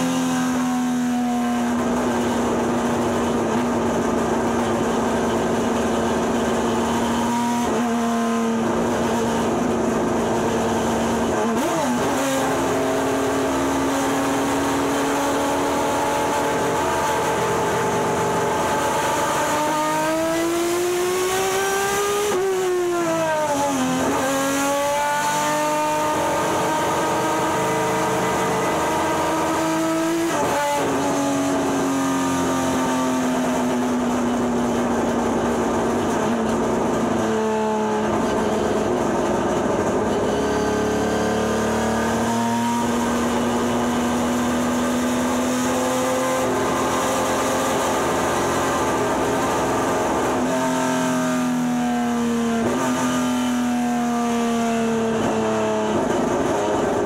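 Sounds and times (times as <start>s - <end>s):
racing pickup engine: 0.0s - 57.0s.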